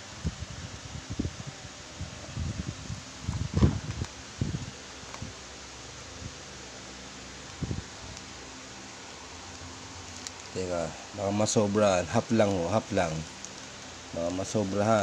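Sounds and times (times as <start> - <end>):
coffee sachet crinkling: 9.4 - 15.0.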